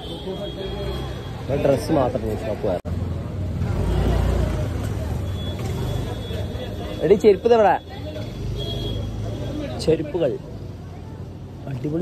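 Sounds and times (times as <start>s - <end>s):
busy street hubbub: 0.0s - 12.0s.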